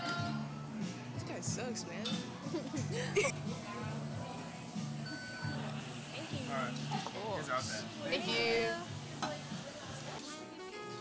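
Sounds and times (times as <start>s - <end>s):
card terminal beep: 5.0s - 5.6s.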